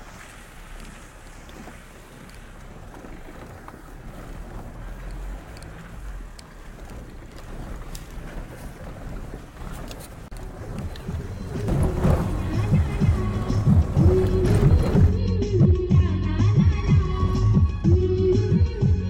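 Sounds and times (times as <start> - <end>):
faint clicks: 0.0 - 15.2
wind buffeting microphone: 0.0 - 15.5.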